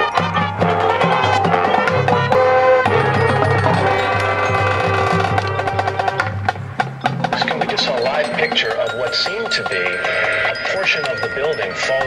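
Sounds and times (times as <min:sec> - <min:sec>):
held brass chord: 0:00.0 - 0:06.6
wavering woodwind lines: 0:00.0 - 0:06.6
struck percussion: 0:00.0 - 0:12.0.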